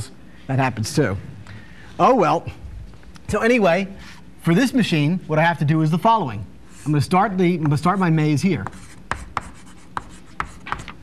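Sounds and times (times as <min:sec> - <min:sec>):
chalk tapping on blackboard: 0:07.6 - 0:11.0.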